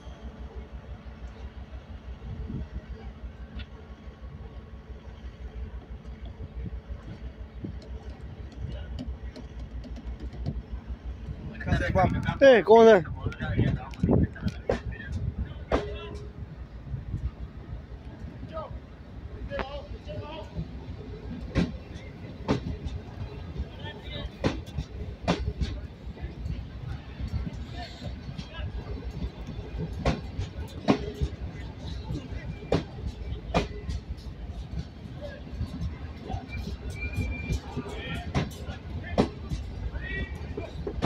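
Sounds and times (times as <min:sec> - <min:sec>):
train coaches rolling: 0:00.0 - 0:41.0
wheels knocking on rails: 0:07.6 - 0:11.4
ringing wheel squeal: 0:36.3 - 0:37.8.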